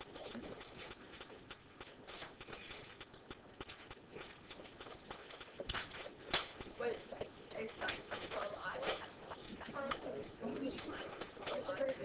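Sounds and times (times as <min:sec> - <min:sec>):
background chatter: 0:06.6 - 0:12.0.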